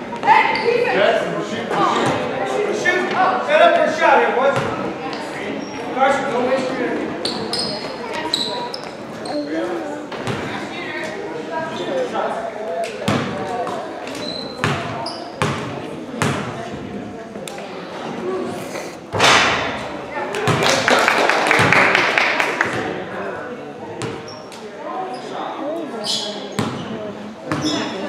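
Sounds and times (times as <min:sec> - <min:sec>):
chatter in echoing hall: 0:00.0 - 0:28.0
crowd noise: 0:00.0 - 0:28.0
sneaker squeaks: 0:00.1 - 0:01.0, 0:04.6 - 0:06.0, 0:07.2 - 0:10.5, 0:13.0 - 0:16.4, 0:24.0 - 0:28.0
basketball bouncing on hardwood floor: 0:14.6 - 0:16.5.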